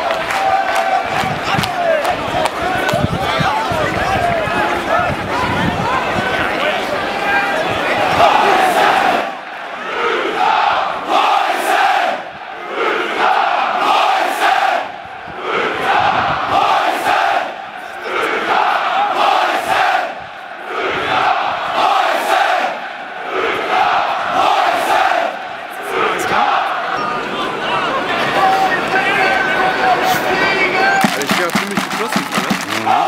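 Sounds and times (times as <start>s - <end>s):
football supporters chanting: 7.1s - 33.0s.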